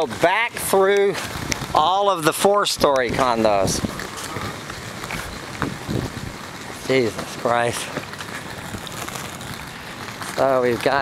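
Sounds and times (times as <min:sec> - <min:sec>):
footsteps on pavement: 0:00.0 - 0:02.0, 0:02.8 - 0:11.0
wind buffeting microphone: 0:02.7 - 0:06.5.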